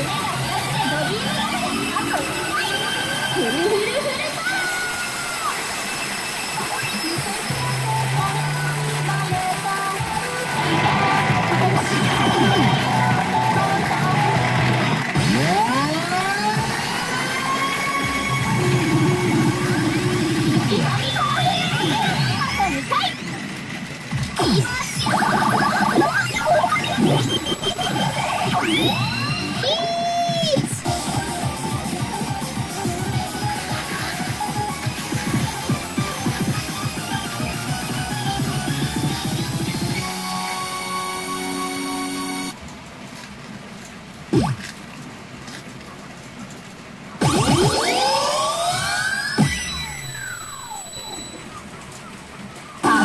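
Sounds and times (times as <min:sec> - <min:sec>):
pachinko machine electronic music: 0:00.0 - 0:42.6, 0:44.3 - 0:44.6, 0:47.2 - 0:53.0
voice-like effects: 0:06.5 - 0:23.6, 0:24.3 - 0:31.2, 0:52.8 - 0:53.0.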